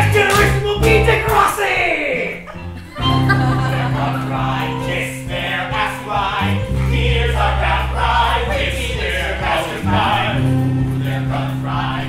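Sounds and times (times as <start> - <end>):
instrumental accompaniment: 0.0 - 1.6, 2.4 - 12.0
cast singing in chorus: 3.3 - 12.0
held bass note: 6.4 - 12.0.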